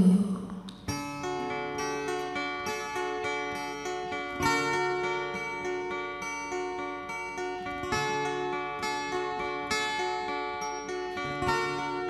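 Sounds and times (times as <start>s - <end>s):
acoustic guitars picking notes: 0.0s - 12.0s.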